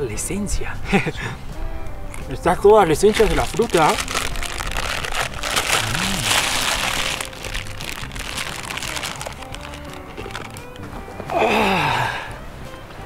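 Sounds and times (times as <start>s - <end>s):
soft instrumental music: 0.0s - 13.0s
plastic bag crinkling: 2.9s - 10.8s.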